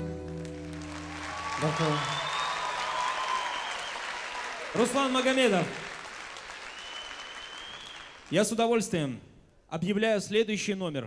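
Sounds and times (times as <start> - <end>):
audience applause: 0.3 - 8.4.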